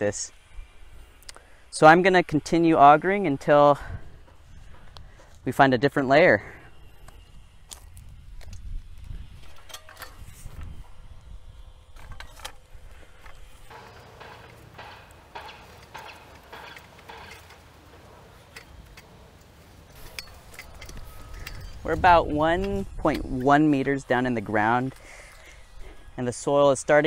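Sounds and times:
hand auger scraping soil: 11.9 - 27.0.

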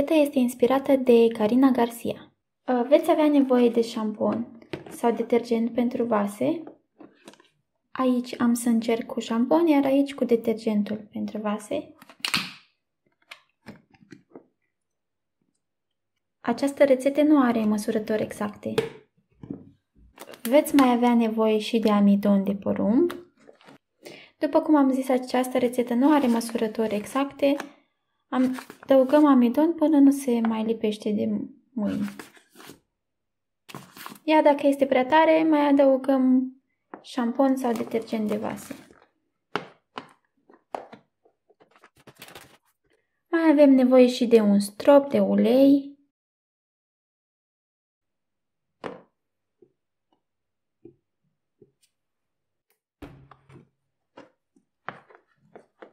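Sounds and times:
plastic bottle handling: 3.6 - 5.4, 23.1 - 23.8, 28.4 - 29.2, 36.9 - 42.7, 53.0 - 55.9.

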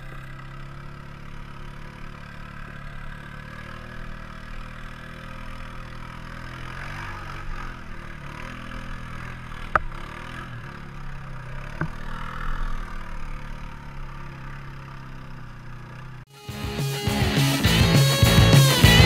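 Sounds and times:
quad engine idling: 0.0 - 19.0.

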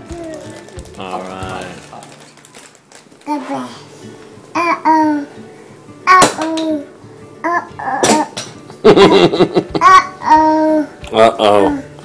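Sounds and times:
toddler babbling: 3.3 - 3.8, 4.6 - 5.3, 6.1 - 8.4, 9.8 - 11.0
toddler coughing: 7.4 - 8.4.

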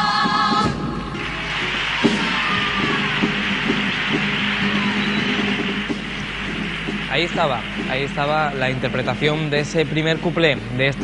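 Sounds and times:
audience applauding: 1.1 - 11.0.

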